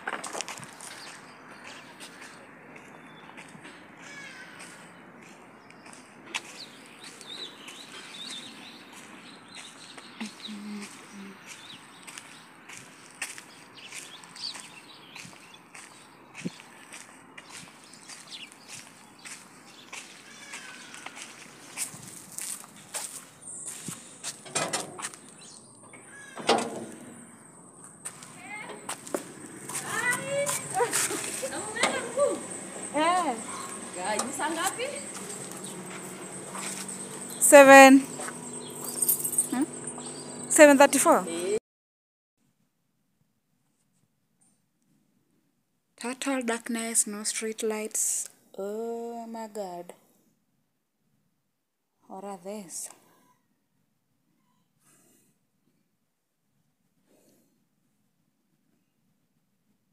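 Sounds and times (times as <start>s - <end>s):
footsteps on paved path: 0.0s - 27.2s, 27.8s - 41.4s
bird chirps: 5.7s - 12.5s, 13.4s - 16.7s, 29.6s - 41.6s
voices: 10.2s - 11.6s, 28.1s - 41.6s.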